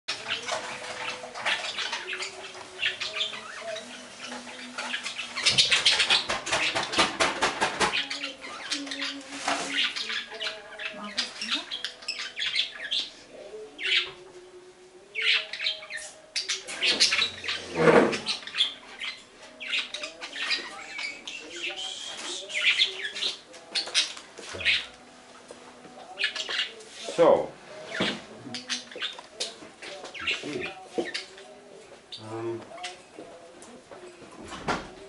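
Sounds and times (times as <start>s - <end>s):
budgerigars chirping and warbling: 0.1s - 14.2s, 15.0s - 25.0s, 26.0s - 33.4s.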